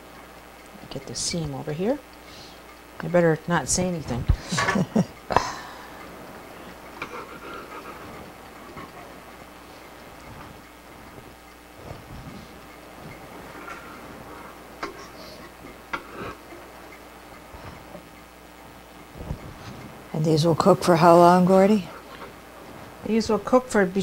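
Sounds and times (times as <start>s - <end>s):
person laughing: 4.4s - 5.9s.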